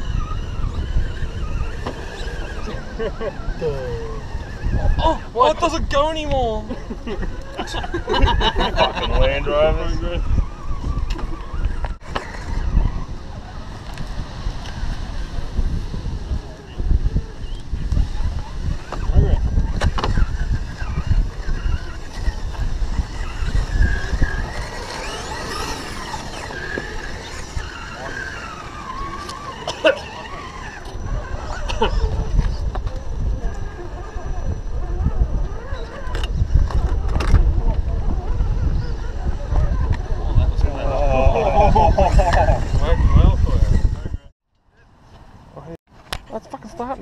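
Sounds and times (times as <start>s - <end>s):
electric motor whining: 0.0s - 5.6s, 7.0s - 44.3s
wind rumbling on microphone: 0.0s - 44.3s.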